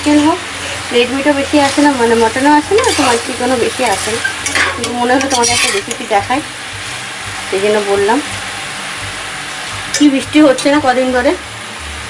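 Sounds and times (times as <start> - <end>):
meat sizzling in a pot: 0.0 - 12.0
spatula scraping a pan: 1.6 - 6.0.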